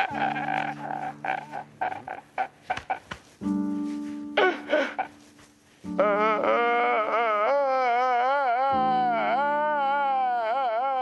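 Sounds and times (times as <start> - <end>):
man sobbing: 0.0 - 3.0, 4.4 - 5.2, 5.9 - 11.0.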